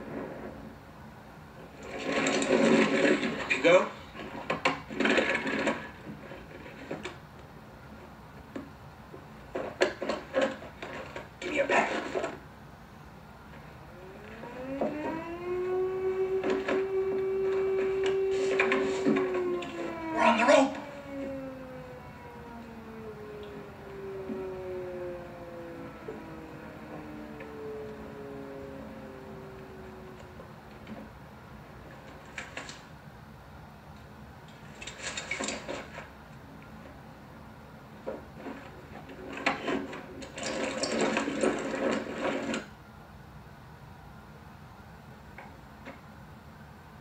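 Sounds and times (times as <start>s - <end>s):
steady low background noise: 0.0s - 47.0s
air-raid siren winding down: 13.5s - 32.9s.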